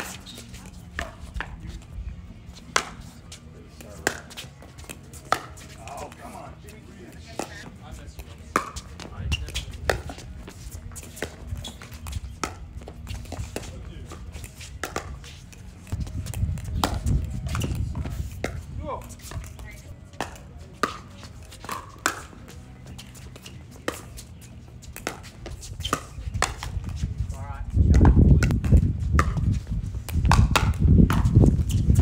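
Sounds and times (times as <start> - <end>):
paddles hitting plastic ball: 2.6 - 6.4, 7.1 - 19.6, 20.2 - 27.1, 27.9 - 32.0.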